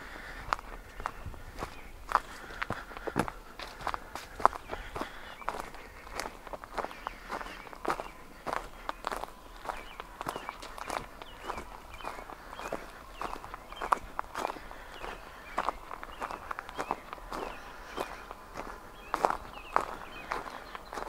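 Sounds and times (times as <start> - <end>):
footsteps on wood-chip mulch: 0.0 - 21.0.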